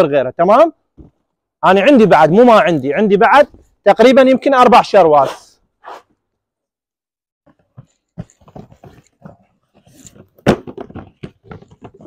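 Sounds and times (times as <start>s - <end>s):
cardboard boxes knocking: 10.3s - 12.0s.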